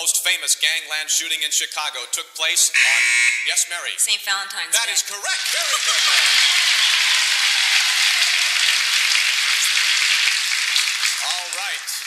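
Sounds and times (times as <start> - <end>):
studio audience applauding: 5.3 - 12.0.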